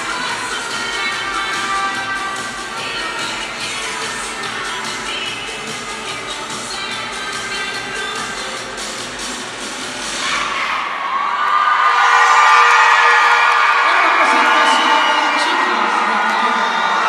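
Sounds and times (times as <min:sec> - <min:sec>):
crowd cheering and shouting: 0:00.0 - 0:08.5, 0:10.0 - 0:17.0
cheer routine music with beat: 0:00.0 - 0:11.0, 0:11.8 - 0:17.0.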